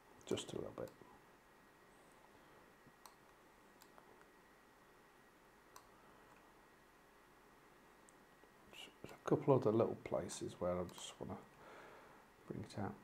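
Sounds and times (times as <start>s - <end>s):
faint computer mouse clicks: 5.7s - 6.5s.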